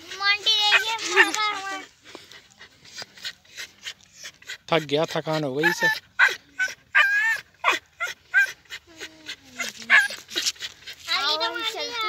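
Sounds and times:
dog whining: 0.5 - 1.8, 5.4 - 10.7.

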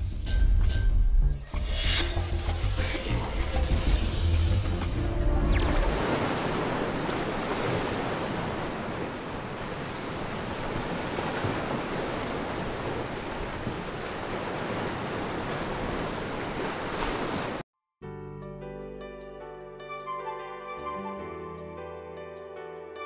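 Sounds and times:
ocean waves breaking: 4.6 - 17.6.

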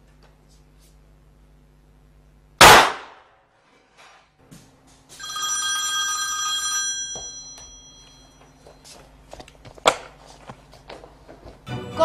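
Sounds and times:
pistol shot with echo: 2.6 - 3.2
high tone ringing: 5.1 - 8.9.

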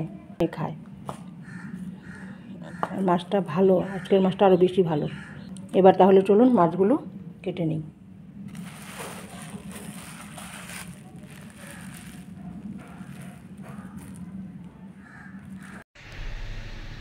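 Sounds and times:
low steady hum: 0.0 - 17.0
plastic bag rustling: 8.5 - 14.7.

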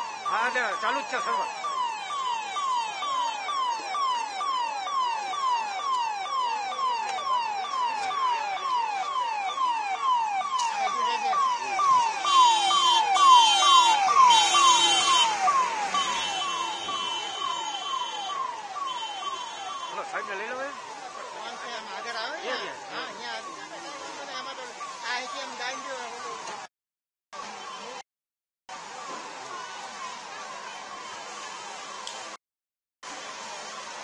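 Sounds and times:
fire engine siren yelping: 0.0 - 26.7, 27.4 - 28.0, 28.7 - 32.4, 33.0 - 34.0.

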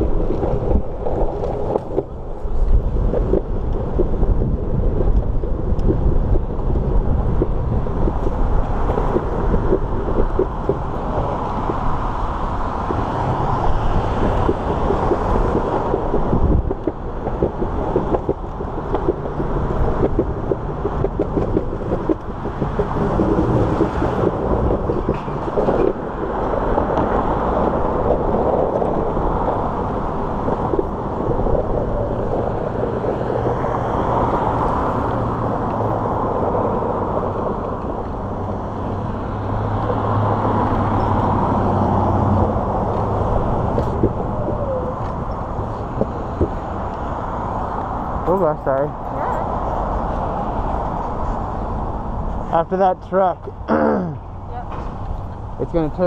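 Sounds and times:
cars driving past: 0.0 - 56.0
low engine hum: 0.0 - 56.0.

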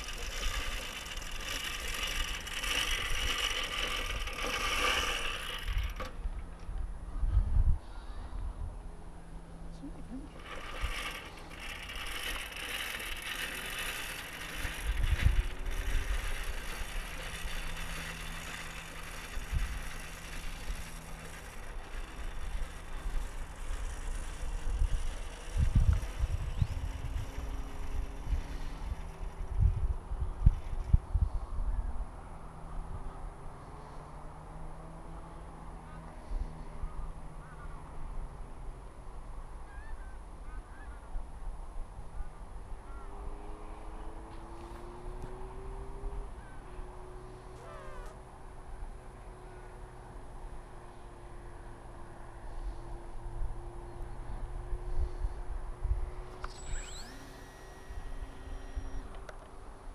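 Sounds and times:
electric motor and propeller whine: 0.0 - 7.7, 8.3 - 39.6, 41.2 - 59.9.

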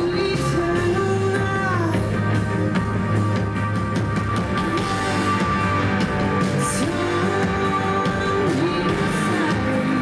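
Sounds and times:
drum kit playing: 0.0 - 10.0
electric guitar: 0.0 - 10.0.

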